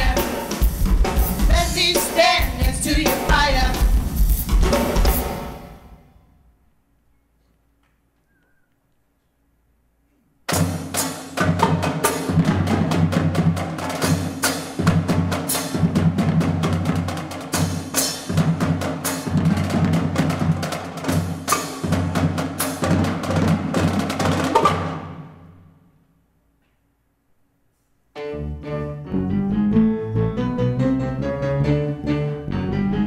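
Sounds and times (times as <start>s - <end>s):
fast drum break: 0.0s - 5.9s, 10.5s - 25.3s.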